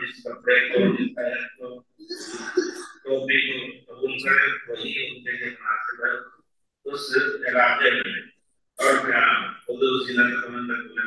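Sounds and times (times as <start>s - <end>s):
man speaking into a microphone: 0.0s - 11.0s.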